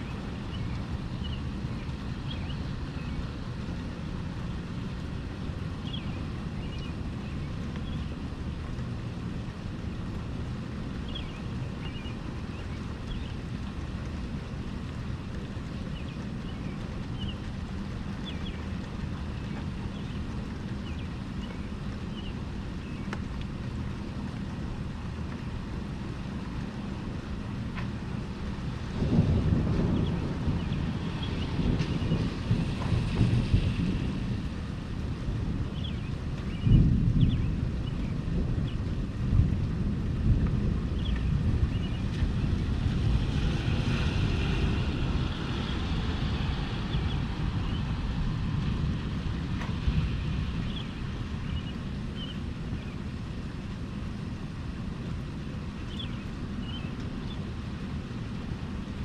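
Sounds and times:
rain: 0.0 - 59.0
rolling thunder: 28.7 - 51.6.

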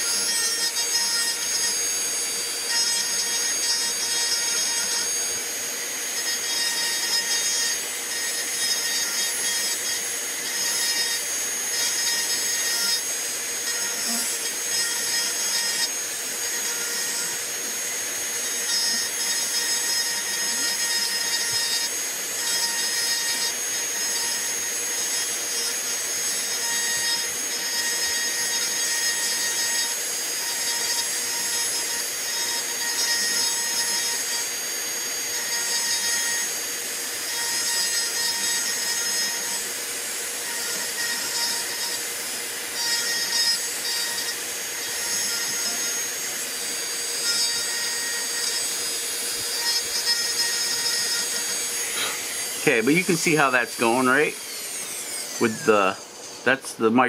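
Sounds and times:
rotary tool grinding wood: 0.0 - 57.0.

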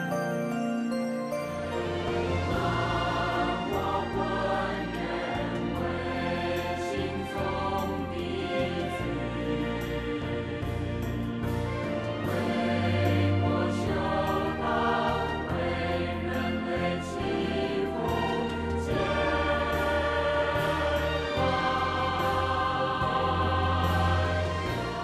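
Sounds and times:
instrumental accompaniment with bass: 0.0 - 25.0
choir singing: 1.6 - 25.0.

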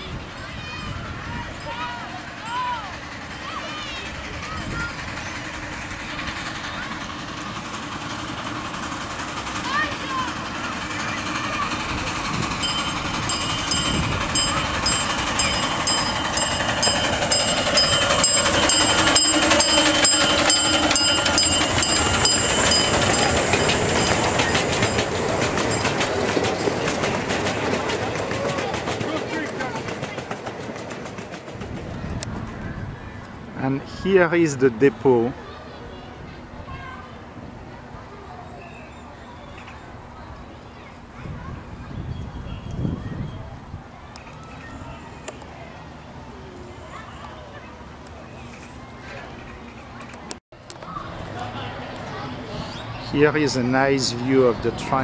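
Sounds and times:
steam locomotive passing: 0.0 - 55.0
wheels clicking over rail joints: 0.3 - 33.6, 44.0 - 52.4
steady high-pitched tone: 6.8 - 27.1.

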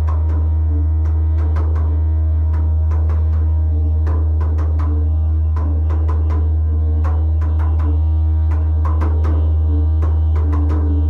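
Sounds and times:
didgeridoo drone: 0.0 - 11.0
sharp percussive taps: 0.0 - 11.0.

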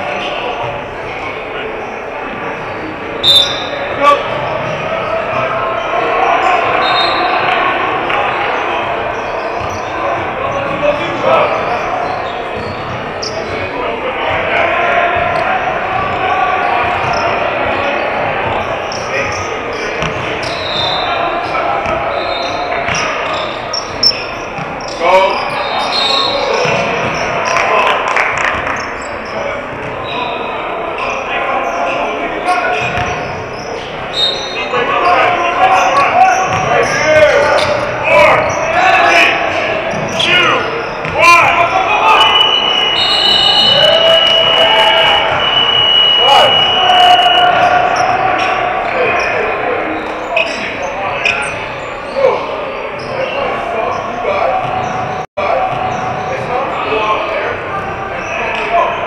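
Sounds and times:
echoing voices: 0.0 - 59.0
shoe squeaks: 1.8 - 5.2, 6.4 - 7.4, 9.1 - 13.7, 16.1 - 27.5, 28.7 - 38.9, 42.1 - 52.4, 53.0 - 55.2.

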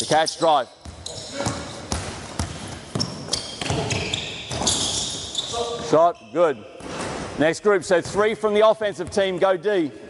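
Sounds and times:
short high squeaks: 0.0 - 1.8, 3.0 - 6.5
basketball bouncing on court: 0.8 - 5.1.

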